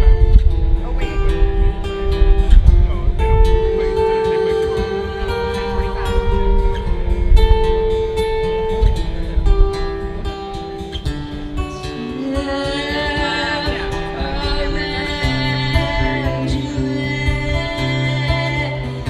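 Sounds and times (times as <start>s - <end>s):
acoustic guitar strumming: 0.0s - 19.0s
man singing: 2.8s - 7.2s, 11.7s - 19.0s.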